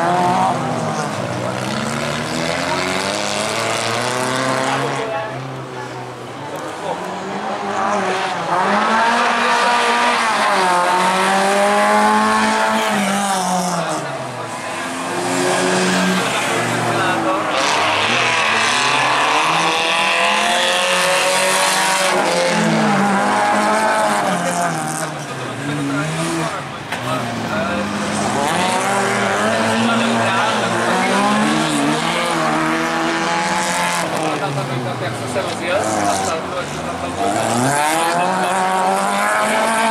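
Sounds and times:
race car engines revving: 0.0 - 39.9.

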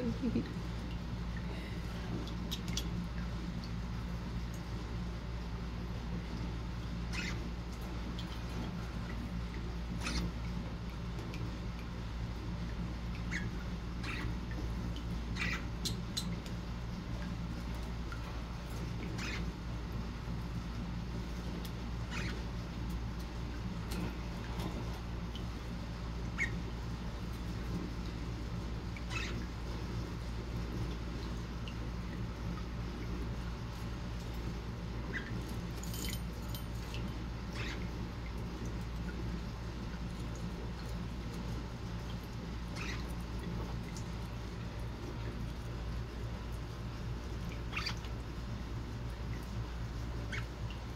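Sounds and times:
low background hum: 0.0 - 50.9.

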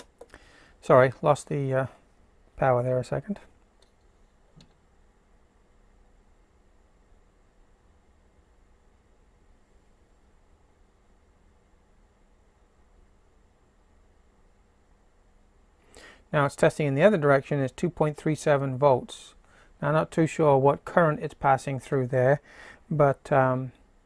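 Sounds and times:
faint hiss: 0.0 - 24.0.

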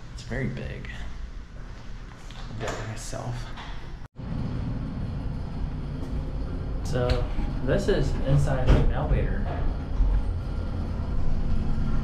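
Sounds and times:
elevator car rumbling: 4.2 - 12.0.

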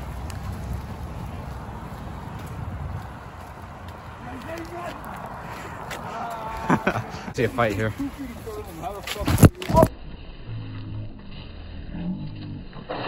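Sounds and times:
wind on microphone: 0.0 - 4.2
footsteps on pavement: 0.0 - 9.9
road traffic: 0.0 - 9.9
faint voices: 3.5 - 9.9.

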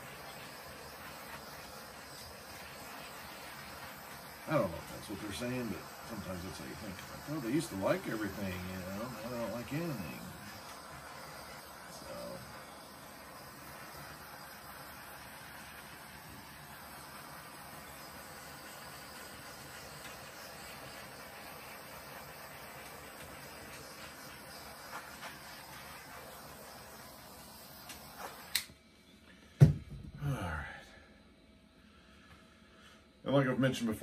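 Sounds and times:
torch click: 0.0 - 28.8
torch flame hissing: 0.0 - 28.8, 29.4 - 30.9.

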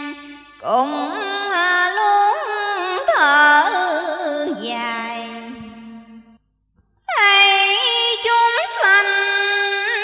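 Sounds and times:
woman chanting in sung style: 0.0 - 6.4, 7.1 - 10.0.

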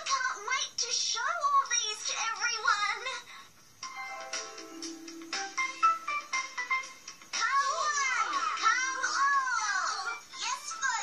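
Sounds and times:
music with held notes: 3.8 - 7.4
cartoon character voice: 7.4 - 11.0.

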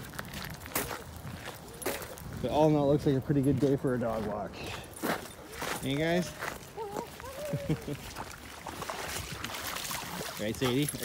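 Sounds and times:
footsteps on wet gravel: 0.0 - 11.0.

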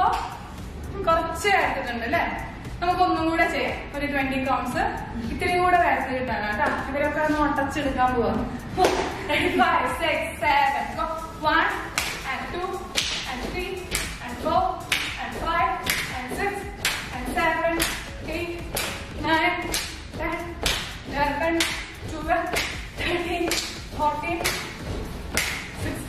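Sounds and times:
hand claps keeping a beat: 0.0 - 0.4, 12.0 - 12.3, 12.9 - 14.2, 14.8 - 25.9.

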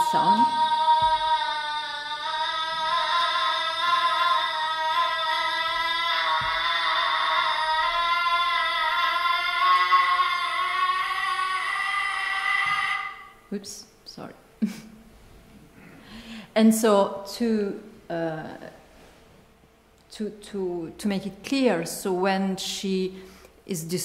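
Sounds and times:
distorted female singing voice: 0.0 - 1.2.

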